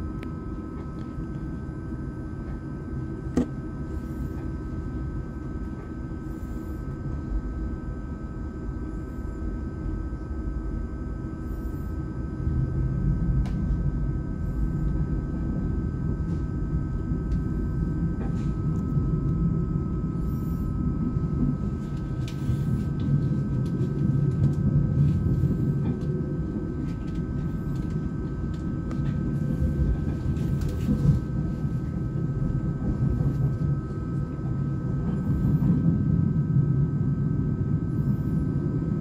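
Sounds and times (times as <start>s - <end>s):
faint steady whine: 0.0s - 39.0s
train interior rumble: 0.0s - 39.0s.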